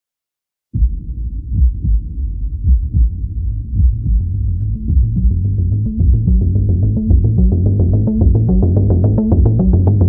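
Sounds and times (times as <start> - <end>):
deep bass pulses: 0.7 - 10.0
slowed electronic instrumental: 3.8 - 10.0.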